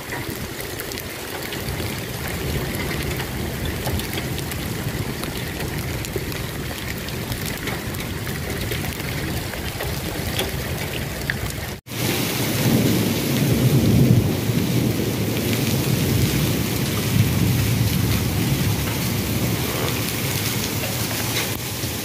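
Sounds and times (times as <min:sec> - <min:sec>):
heavy rain pouring: 0:00.0 - 0:22.0.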